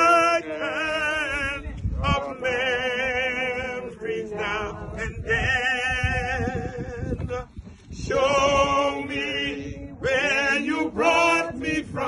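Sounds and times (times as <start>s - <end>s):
man singing a hymn: 0.0s - 12.0s.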